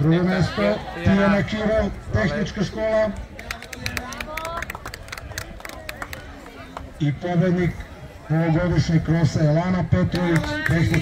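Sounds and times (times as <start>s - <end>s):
people's voices: 0.0s - 11.0s
scattered hand-clapping: 3.4s - 6.9s, 10.0s - 11.0s.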